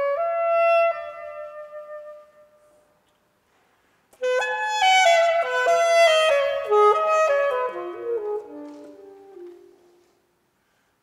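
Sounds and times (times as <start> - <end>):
solo saxophone: 0.0 - 2.8, 4.2 - 10.1.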